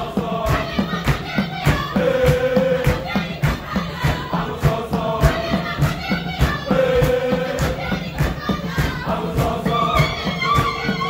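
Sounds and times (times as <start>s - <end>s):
group of voices singing: 0.0s - 11.0s
hand drums beating: 0.0s - 11.0s.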